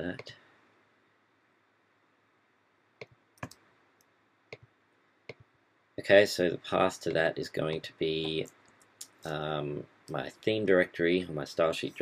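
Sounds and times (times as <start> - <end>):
computer keys and mouse clicking: 3.0 - 4.7.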